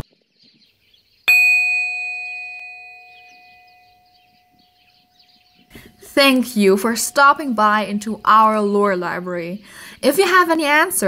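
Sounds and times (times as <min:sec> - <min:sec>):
bell-like chime ringing: 0:01.3 - 0:07.8.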